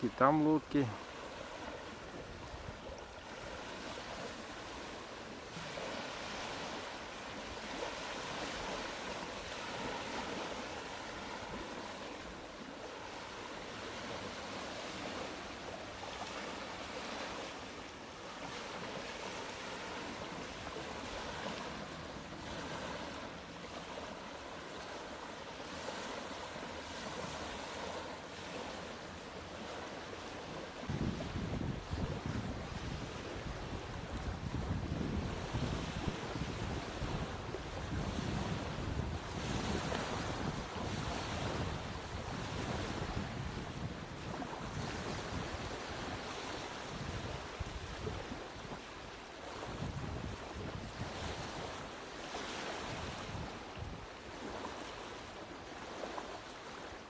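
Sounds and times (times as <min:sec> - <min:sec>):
small waves lapping on pebbles: 0:00.0 - 0:57.0
wind: 0:00.0 - 0:57.0
wind buffeting microphone: 0:01.4 - 0:17.6, 0:25.8 - 0:48.9, 0:49.5 - 0:51.8, 0:52.8 - 0:54.6.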